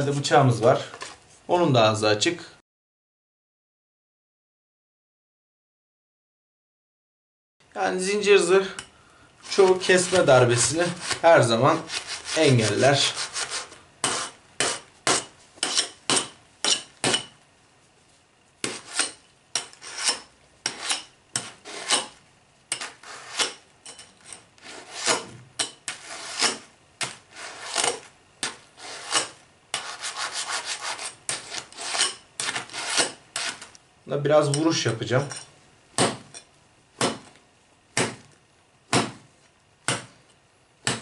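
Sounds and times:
knife rasping across chainmail: 11.8 - 16.0, 18.7 - 22.1, 28.8 - 33.6.

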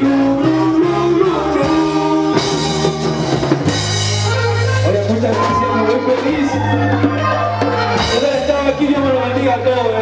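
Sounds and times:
accordion chords: 0.0 - 10.0
drum kit and percussion: 0.0 - 10.0.

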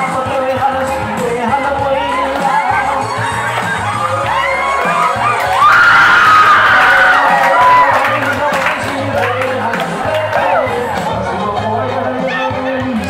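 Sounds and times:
group of voices singing: 0.0 - 5.7, 6.4 - 13.0
low repeating bass line: 0.0 - 13.0
high held cry: 1.7 - 8.6.

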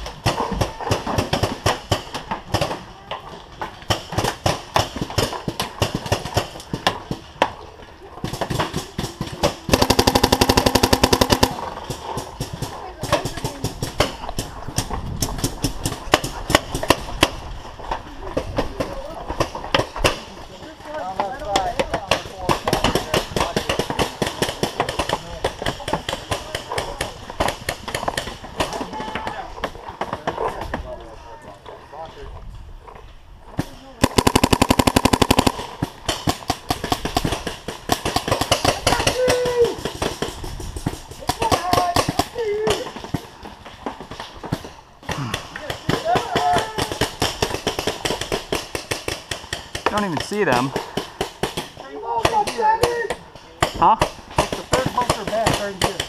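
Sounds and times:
paintball markers firing: 8.3 - 17.0, 34.0 - 39.2.

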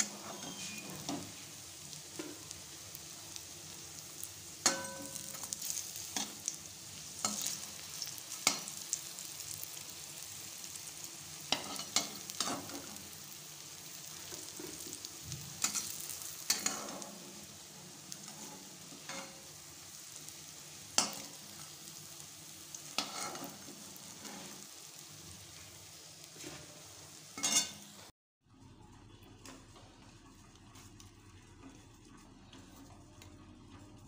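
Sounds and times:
metal spatula scraping pan: 0.0 - 2.5, 11.5 - 13.1, 15.6 - 17.5, 18.2 - 19.5, 22.9 - 24.7, 27.4 - 27.8
food sizzling in hot oil: 0.0 - 28.1.

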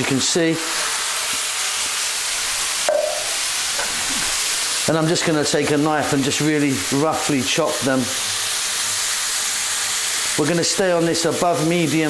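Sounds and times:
food sizzling in a wok: 0.0 - 12.0.

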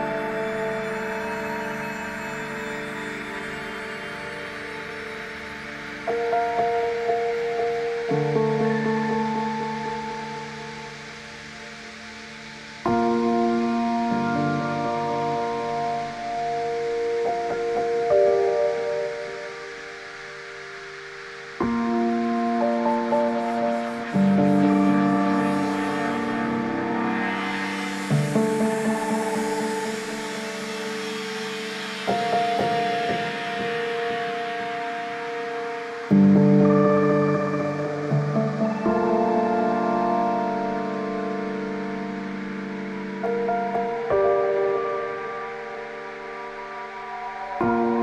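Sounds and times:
ambient synth chords: 0.0 - 48.0
soft hiss: 0.0 - 48.0.

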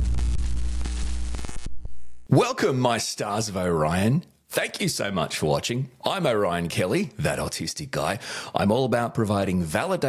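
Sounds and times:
deep hum: 0.0 - 2.2
electric crackling static: 0.0 - 2.3.

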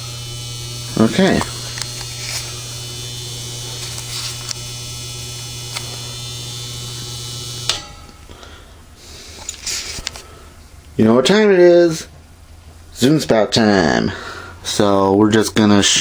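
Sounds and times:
electric fan buzzing: 0.0 - 16.0
fan switch click: 7.6 - 8.3
faint handling sounds: 9.0 - 10.9.

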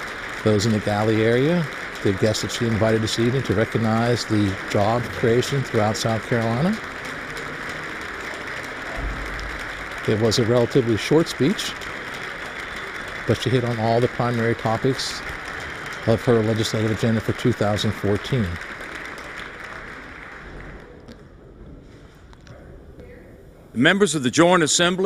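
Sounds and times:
crowd applause: 0.0 - 21.2.

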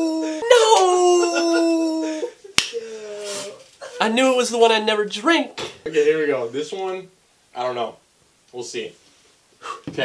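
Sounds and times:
man howling in dismay: 0.0 - 3.3.

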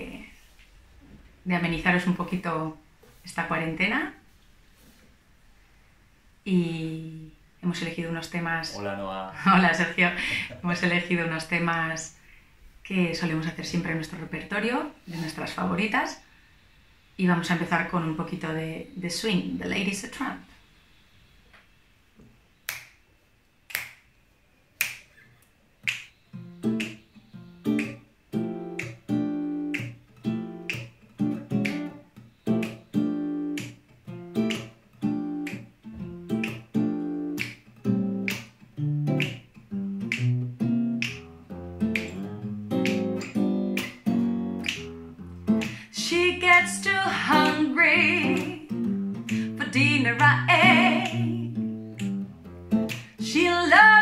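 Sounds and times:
finger snaps: 22.6 - 23.0, 23.7 - 24.1, 24.8 - 45.9, 47.3 - 53.2
acoustic guitar swing chords: 25.8 - 54.0
woman singing: 45.8 - 48.8, 49.4 - 51.6, 53.2 - 54.0.

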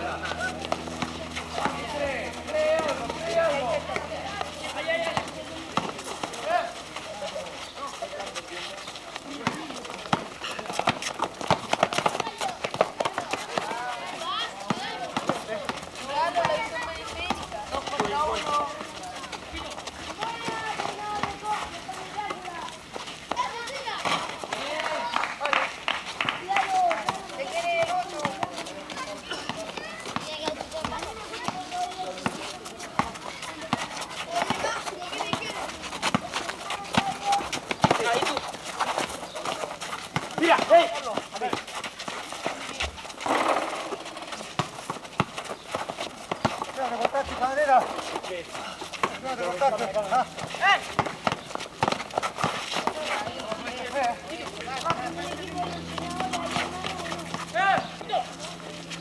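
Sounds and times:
basketball bouncing on concrete: 0.0 - 6.5, 9.3 - 25.0, 26.7 - 58.7
distant players calling: 0.0 - 59.0
footfalls on court: 50.4 - 53.9.

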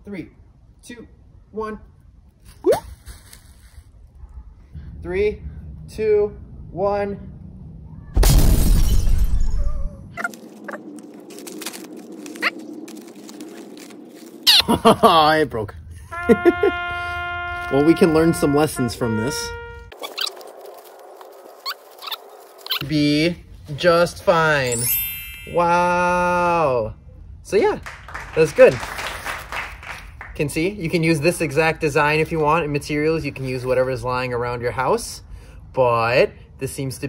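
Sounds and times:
plastic wrapping crinkling: 3.0 - 3.9, 10.2 - 14.6, 19.9 - 22.8
brief rising squeak: 21.6 - 22.9.

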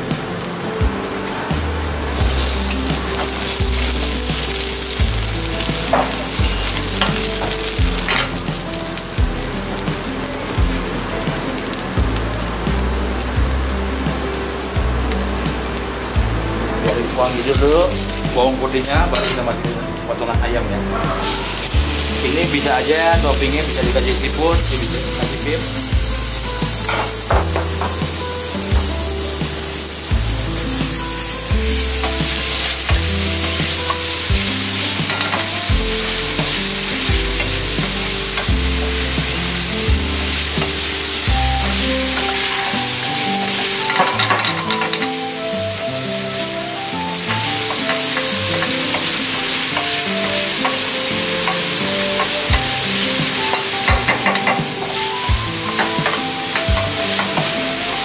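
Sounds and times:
background music with bass: 0.0 - 58.0
chicken sizzling in frying pan: 0.0 - 58.0.

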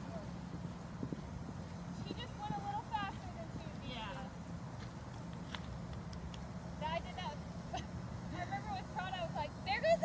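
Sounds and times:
low outdoor rumble on microphone: 0.0 - 10.0.

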